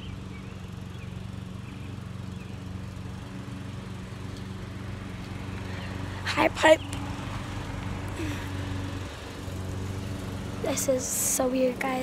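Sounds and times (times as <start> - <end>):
low motor hum: 0.0 - 12.0
outdoor noise: 0.0 - 12.0.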